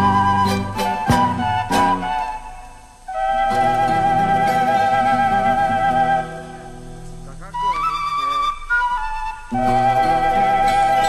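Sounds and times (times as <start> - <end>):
flute melody: 0.0 - 11.0.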